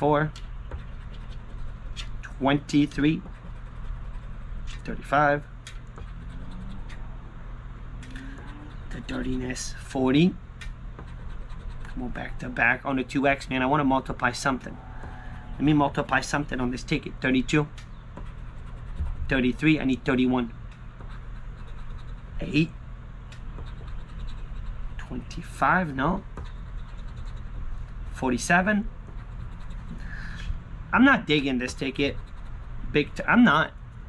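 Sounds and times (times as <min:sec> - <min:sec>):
low background hum: 0:00.0 - 0:34.0
coin scratching lottery ticket: 0:00.8 - 0:05.2, 0:05.9 - 0:07.0, 0:08.4 - 0:09.8, 0:11.1 - 0:12.6, 0:18.2 - 0:20.2, 0:21.1 - 0:22.7, 0:23.6 - 0:27.6, 0:29.2 - 0:30.1, 0:31.6 - 0:33.2.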